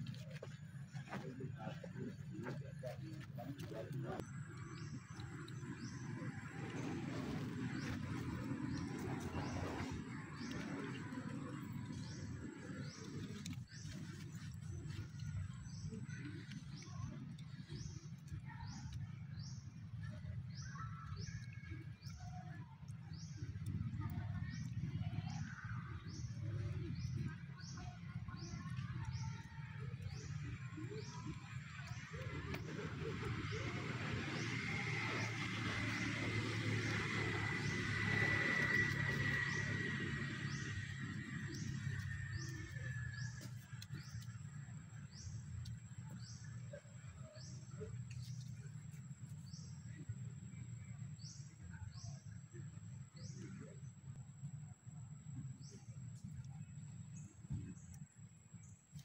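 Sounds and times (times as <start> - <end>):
steady low rumble: 0.0 - 59.0.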